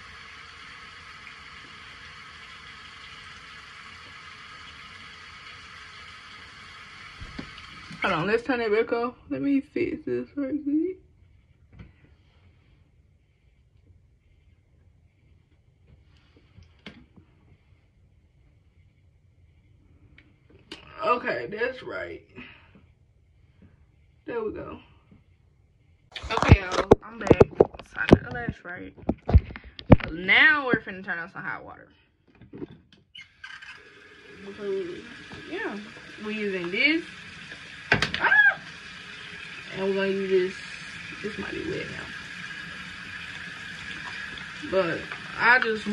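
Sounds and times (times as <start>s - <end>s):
sink tap water running: 0.0s - 11.0s, 26.1s - 31.5s, 33.1s - 45.9s.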